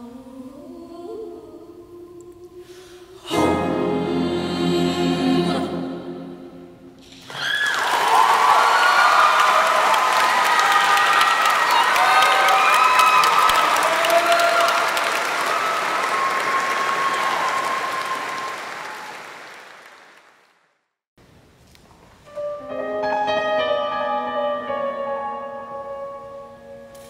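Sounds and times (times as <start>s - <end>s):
choir holding final chord: 3.3s - 7.0s
people cheering: 7.1s - 20.3s
audience applause: 7.1s - 20.7s.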